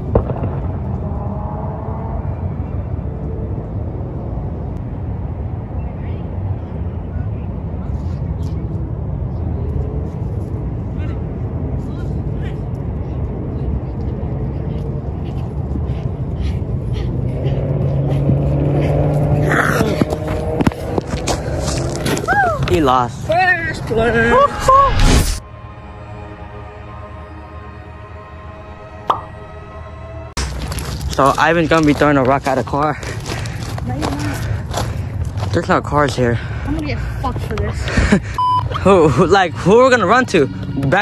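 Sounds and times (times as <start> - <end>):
low outdoor rumble: 0.0 - 41.0
distant voices: 5.3 - 24.5.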